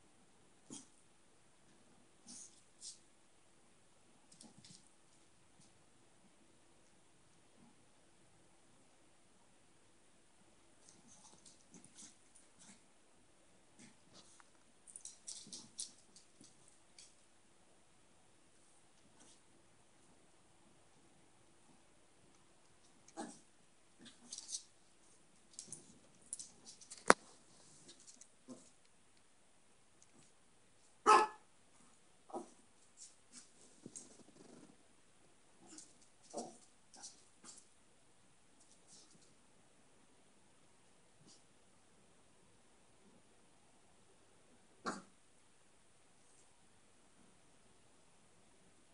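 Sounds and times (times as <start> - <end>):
dog barking: 31.0 - 31.5.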